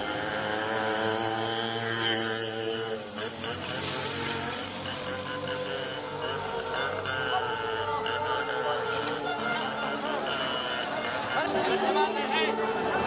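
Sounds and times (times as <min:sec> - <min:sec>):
person chanting held notes: 0:00.0 - 0:13.0.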